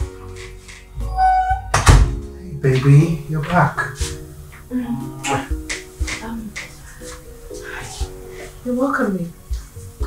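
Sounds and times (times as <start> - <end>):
background music: 0.0 - 10.0
door shutting thunk: 1.4 - 2.2.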